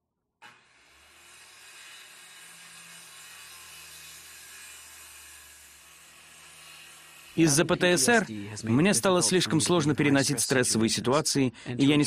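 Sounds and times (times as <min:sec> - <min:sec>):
circular saw cutting wood: 0:00.4 - 0:10.7.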